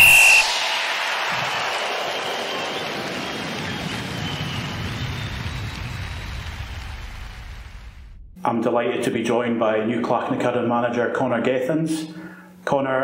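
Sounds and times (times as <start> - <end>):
low pulsing: 0.0 - 8.6.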